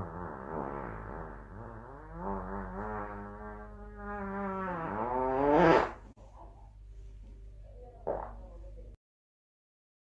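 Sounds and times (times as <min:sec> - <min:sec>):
fart sound effect: 0:00.0 - 0:06.1, 0:08.0 - 0:08.4.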